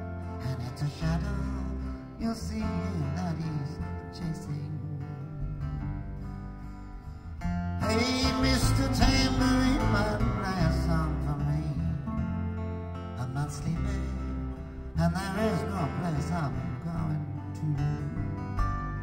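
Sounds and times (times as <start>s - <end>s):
bass guitar: 0.0s - 19.0s
guitars: 0.0s - 19.0s.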